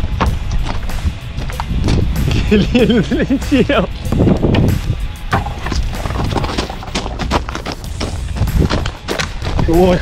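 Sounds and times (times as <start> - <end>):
footsteps and landing thuds: 0.0 - 2.2, 4.1 - 9.7
wind rumble on microphone: 0.0 - 6.9, 7.9 - 10.0.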